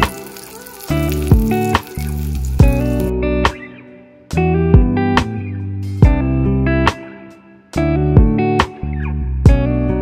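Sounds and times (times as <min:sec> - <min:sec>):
sausage sizzling in a pan: 0:00.0 - 0:03.1
background music: 0:00.0 - 0:10.0.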